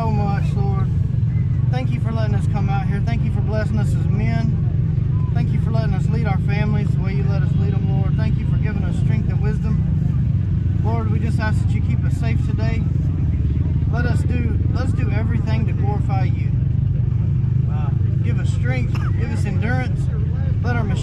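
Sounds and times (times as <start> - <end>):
continuous low rumble: 0.0 - 21.0.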